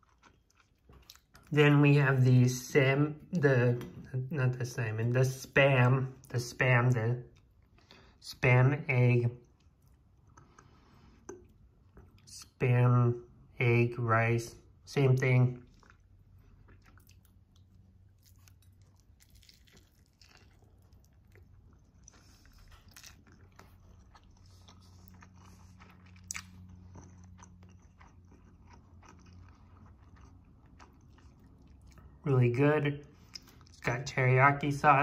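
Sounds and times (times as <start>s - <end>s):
chewing mouth sounds: 0.0s - 1.5s, 15.6s - 32.2s
low steady hum: 0.0s - 35.0s.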